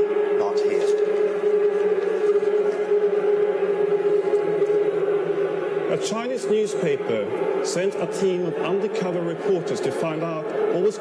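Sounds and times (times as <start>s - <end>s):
faint steady tones: 0.0s - 11.0s
steady drone: 0.0s - 11.0s.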